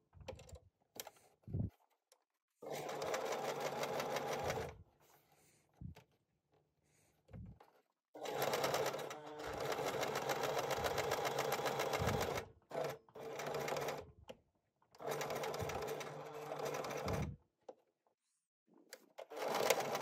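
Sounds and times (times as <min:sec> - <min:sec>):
sewing machine stitching: 0:02.6 - 0:04.8, 0:08.2 - 0:14.1, 0:15.0 - 0:17.4, 0:19.2 - 0:20.0.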